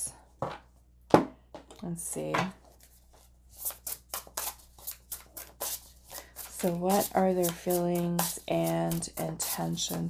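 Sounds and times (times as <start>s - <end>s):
cards being shuffled: 2.6s - 10.0s.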